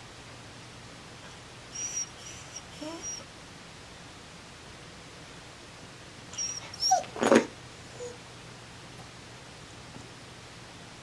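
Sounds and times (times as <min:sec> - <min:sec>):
dog whimpering: 0:01.8 - 0:03.3, 0:06.4 - 0:07.3, 0:07.9 - 0:08.2.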